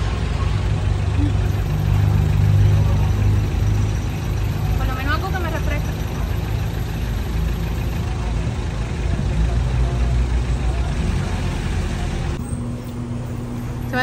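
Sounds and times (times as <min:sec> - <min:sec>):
vehicle engine idling: 0:00.0 - 0:14.0
faint voices: 0:00.1 - 0:12.4.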